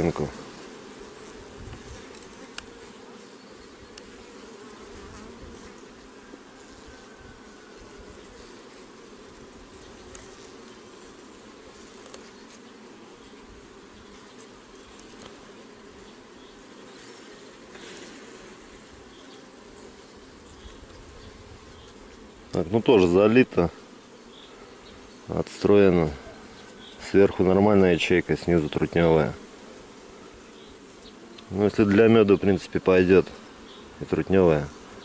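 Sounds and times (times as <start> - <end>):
bees buzzing: 0.0 - 35.0
wooden hive frames clicking: 1.7 - 2.9, 14.8 - 15.5.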